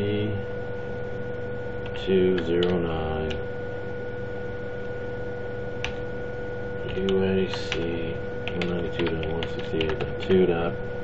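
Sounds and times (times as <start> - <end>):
steady electrical hum: 0.0 - 11.0.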